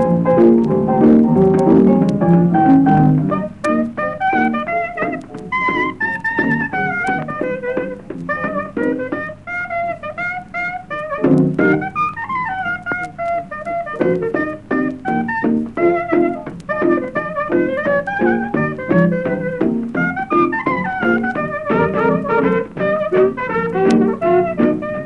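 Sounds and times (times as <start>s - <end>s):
jazz band playing: 0.0s - 25.0s
lead instrument melody: 0.0s - 25.0s.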